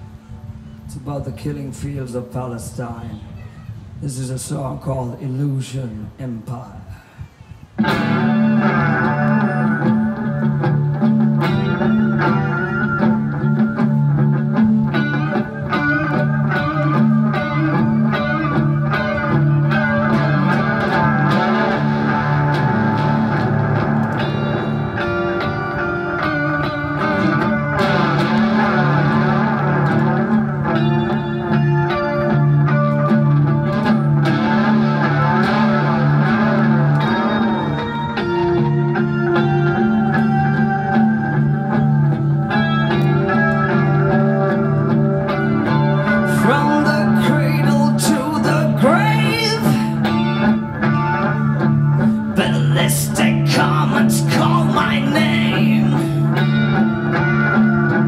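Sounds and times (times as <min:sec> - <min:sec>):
electric guitar with effects: 0:06.9 - 0:58.0.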